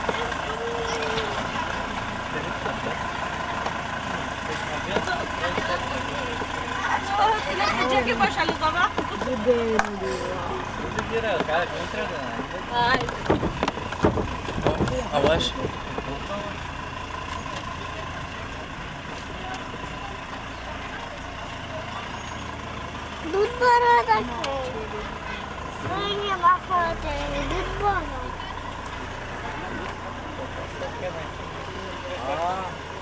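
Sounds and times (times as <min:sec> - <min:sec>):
people calling out: 0:00.0 - 0:03.0, 0:06.4 - 0:10.8
cars rolling slowly: 0:00.0 - 0:33.0.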